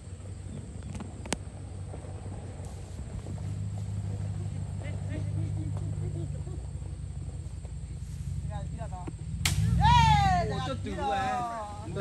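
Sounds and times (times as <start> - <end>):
vehicle engine humming: 0.0 - 12.0
faint voices: 2.0 - 12.0.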